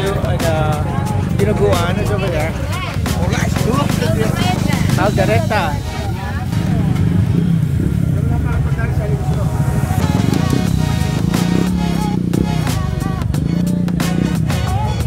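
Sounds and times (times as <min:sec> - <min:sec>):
low street rumble: 0:00.0 - 0:15.0
music: 0:00.0 - 0:15.0
voices: 0:00.0 - 0:15.0.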